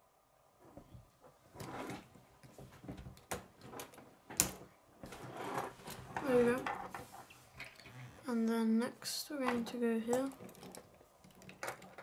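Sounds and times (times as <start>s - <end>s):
plastic pieces clicking together: 10.1s - 12.0s.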